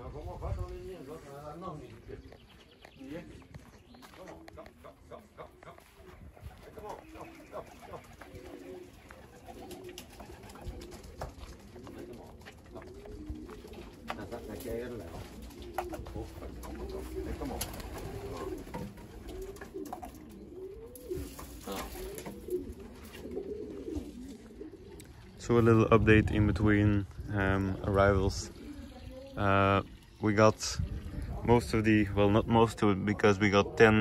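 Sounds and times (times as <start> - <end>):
pigeons cooing: 0.0 - 34.0.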